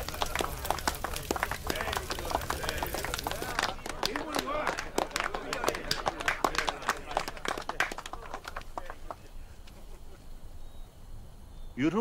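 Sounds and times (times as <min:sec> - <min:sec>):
indistinct voices: 0:00.0 - 0:09.6.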